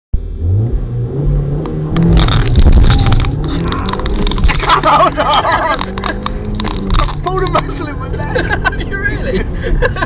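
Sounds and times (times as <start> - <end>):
car engine accelerating: 0.2 - 10.0.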